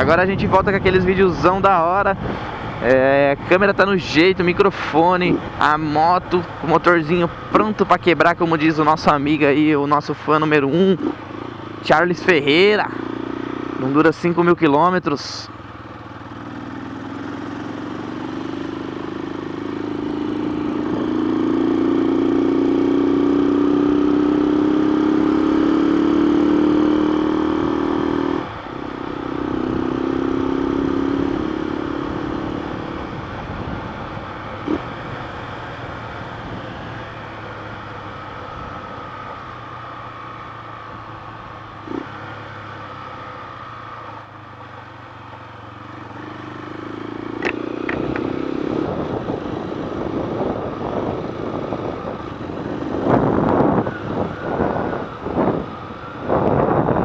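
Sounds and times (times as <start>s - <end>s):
motorcycle engine accelerating: 10.6s - 14.0s, 15.6s - 57.0s.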